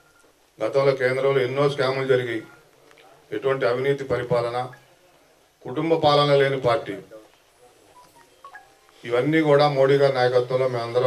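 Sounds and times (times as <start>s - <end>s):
man speaking: 0.6s - 8.0s, 9.0s - 11.0s
faint electronic beeps: 4.6s - 5.0s, 7.4s - 9.5s.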